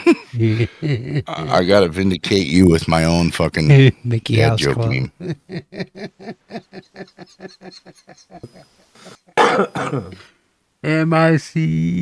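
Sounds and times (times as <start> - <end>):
man laughing: 0.0 - 1.5, 5.1 - 9.2.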